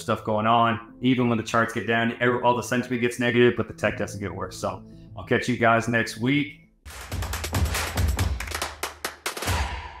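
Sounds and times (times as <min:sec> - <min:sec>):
sharp percussive clicks and hits: 0:06.9 - 0:10.0.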